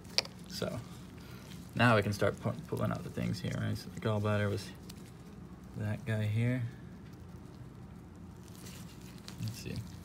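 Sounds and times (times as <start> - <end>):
low steady hum: 0.0 - 10.0
soft crackles: 0.0 - 10.0
wet squishing of gloved hands: 0.0 - 10.0.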